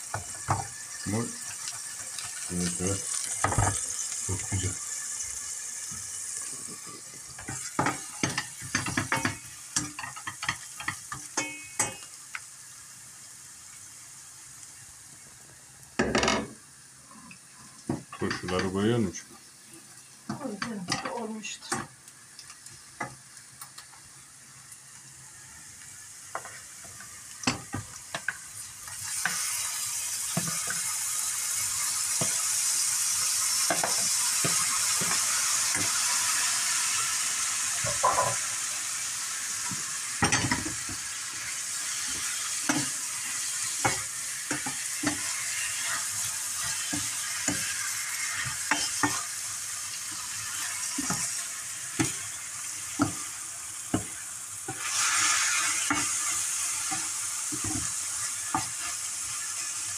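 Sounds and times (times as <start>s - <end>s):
food sizzling in hot oil: 0.0s - 59.9s
pans and utensils clinking: 6.5s - 12.2s, 16.0s - 16.6s, 17.9s - 18.9s, 26.3s - 28.4s, 33.6s - 36.2s, 37.8s - 38.6s, 39.6s - 41.1s, 41.9s - 46.0s.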